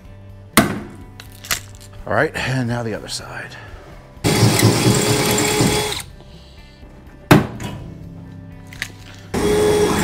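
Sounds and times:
cordless drill boring: 0:04.3 - 0:06.1.

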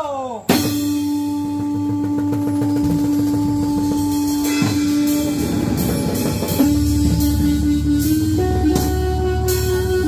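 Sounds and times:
held note: 0:00.7 - 0:10.0.

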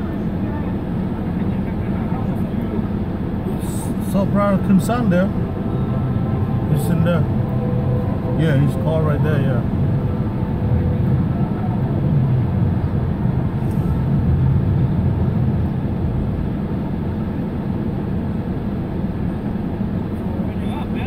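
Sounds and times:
car idling from inside cabin: 0:00.0 - 0:21.0.

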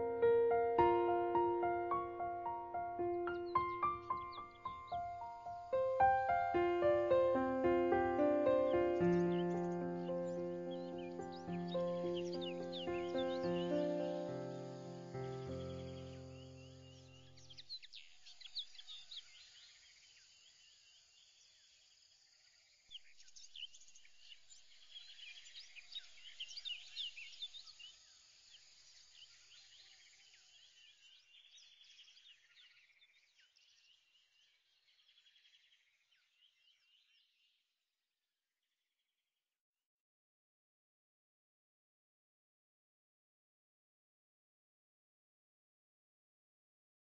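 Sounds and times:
background music: 0:00.0 - 0:16.8
birds chirping: 0:00.0 - 0:19.6.

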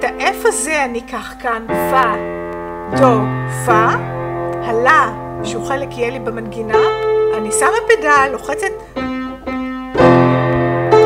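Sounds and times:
piano notes and chord: 0:00.0 - 0:11.0.

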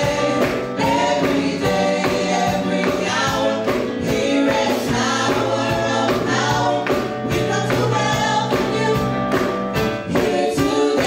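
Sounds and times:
drums: 0:00.0 - 0:11.0
group singing in harmony: 0:00.0 - 0:11.0
keyboard: 0:00.0 - 0:11.0.

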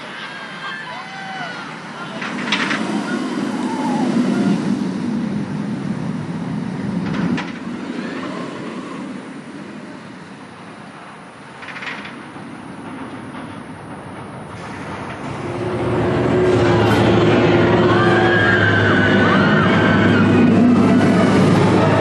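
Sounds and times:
roller coaster rumbling on track: 0:00.0 - 0:22.0.

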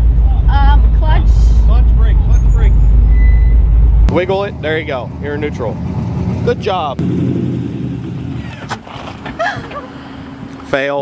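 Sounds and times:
engine rumbling at low revs: 0:00.0 - 0:11.0.

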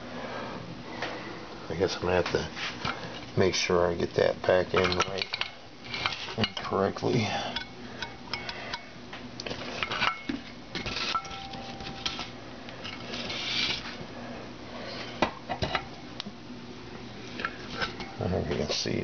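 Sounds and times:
metal parts clinking on metal pan: 0:04.7 - 0:06.8, 0:10.9 - 0:12.3.

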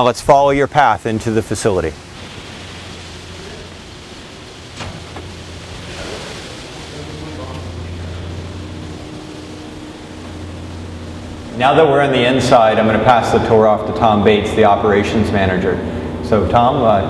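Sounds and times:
steady rushing noise: 0:00.0 - 0:17.0
low hum: 0:00.6 - 0:17.0.

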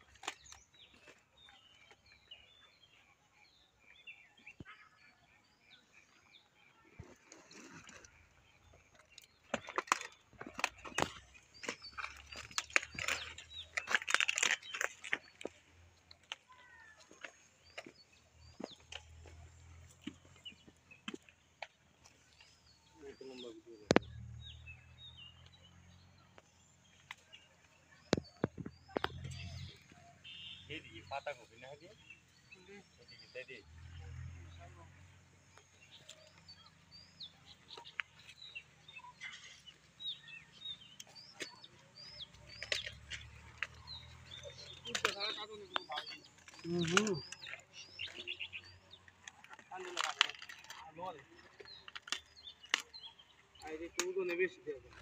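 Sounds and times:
small birds chirping: 0:00.0 - 0:55.0
clicks and rustling: 0:07.2 - 0:22.7, 0:40.9 - 0:55.0.

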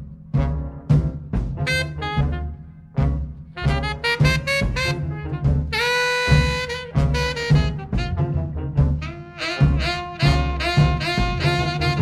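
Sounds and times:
bass: 0:00.0 - 0:12.0
tenor saxophone playing jazz: 0:00.5 - 0:12.0.

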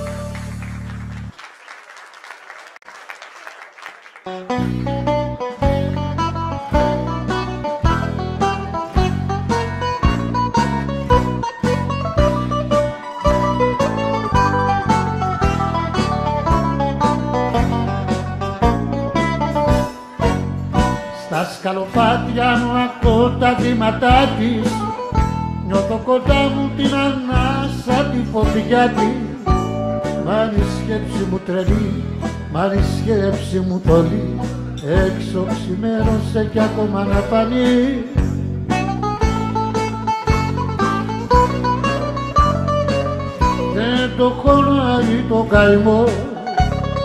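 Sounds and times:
steady bass line: 0:00.0 - 0:01.4, 0:04.4 - 0:21.2, 0:21.9 - 0:47.0
bouzouki melody: 0:04.3 - 0:21.3, 0:22.0 - 0:33.2, 0:36.7 - 0:47.0
plucked strings: 0:04.3 - 0:47.0
lead melody with wide vibrato: 0:04.4 - 0:21.2.

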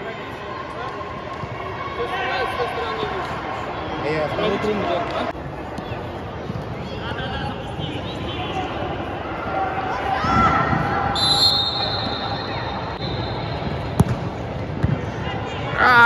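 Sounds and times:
high whistle: 0:11.1 - 0:13.6
ball being struck: 0:14.0 - 0:15.0.

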